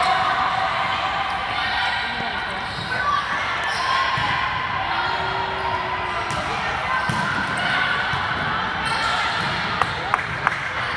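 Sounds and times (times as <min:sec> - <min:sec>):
voices in a large hall: 0:00.0 - 0:10.9
volleyball court noise: 0:00.0 - 0:10.9.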